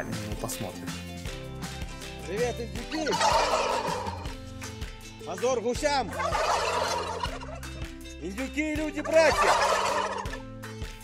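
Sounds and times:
turkeys gobbling: 2.9s - 4.4s, 6.1s - 7.9s, 9.0s - 10.4s.

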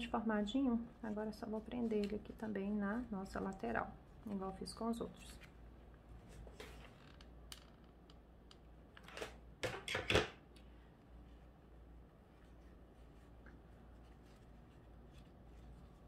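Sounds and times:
ribbon rustling: 11.1s - 16.0s.

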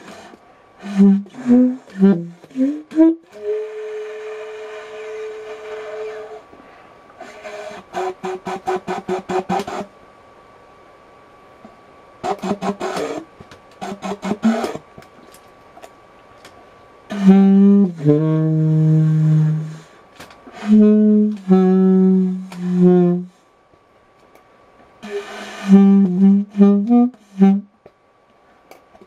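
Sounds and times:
single-reed woodwind playing: 0.8s - 6.4s, 17.1s - 23.4s, 25.0s - 27.7s.

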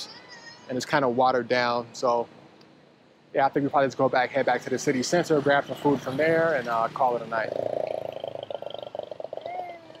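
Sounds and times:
creaky vocal hum: 7.3s - 10.0s.

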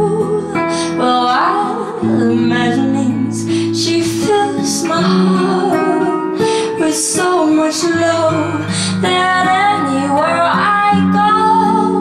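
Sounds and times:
acoustic guitar chords: 0.0s - 12.0s
girl singing: 0.0s - 12.0s.

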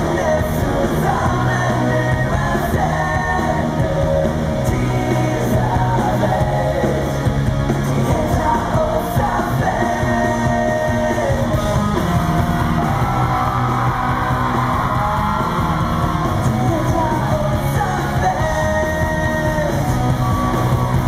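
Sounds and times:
electric guitar: 0.0s - 21.0s.

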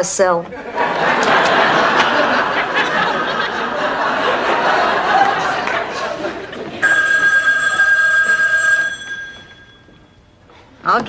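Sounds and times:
telephone ringing: 6.8s - 10.3s.

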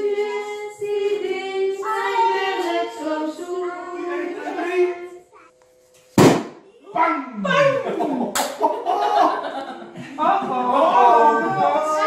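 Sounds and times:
balloon popping: 6.2s - 6.6s
sharp crack: 6.2s - 6.6s.

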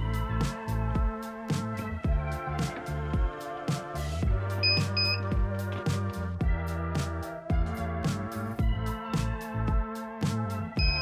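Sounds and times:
lo-fi music with steady beat: 0.0s - 11.0s.

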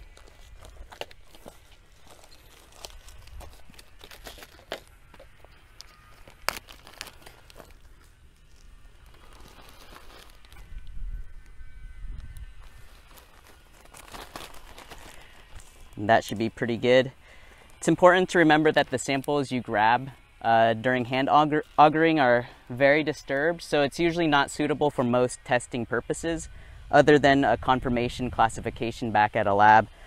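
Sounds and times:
small crackles and taps: 0.0s - 11.6s
plastic bag crinkling: 0.0s - 19.8s.

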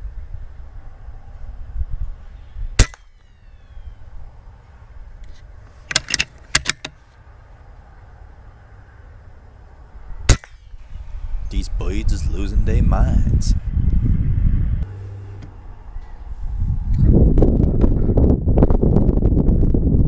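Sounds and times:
low outdoor rumble: 0.0s - 20.0s
air rifle shots: 2.8s - 3.5s, 10.3s - 11.0s.

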